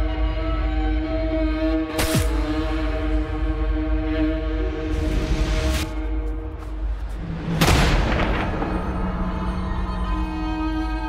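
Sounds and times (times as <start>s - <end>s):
dark trailer music: 0.0s - 11.0s.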